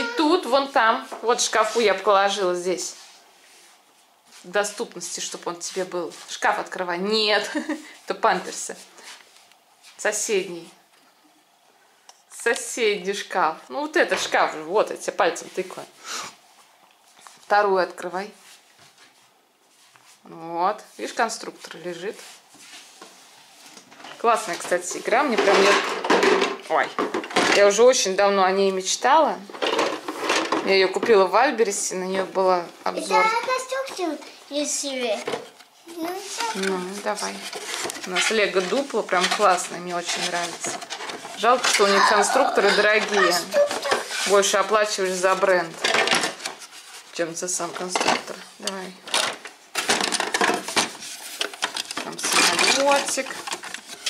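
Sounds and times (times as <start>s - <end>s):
faint rustling in cupboard: 0.0s - 10.8s, 14.0s - 27.0s, 29.5s - 49.0s
plastic bricks clattering in box: 49.1s - 54.0s.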